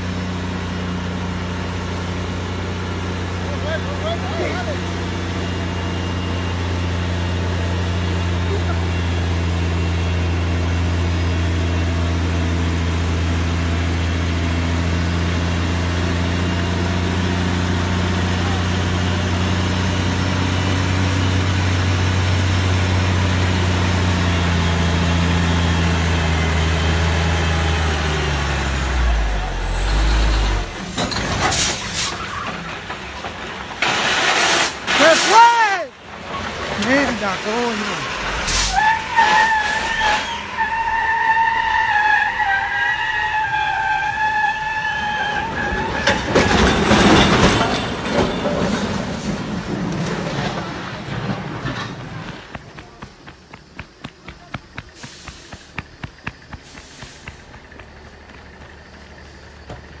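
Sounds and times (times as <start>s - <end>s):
diesel truck engine droning: 0.0s - 60.0s
air hiss bursts: 55.0s - 55.8s, 56.6s - 57.4s.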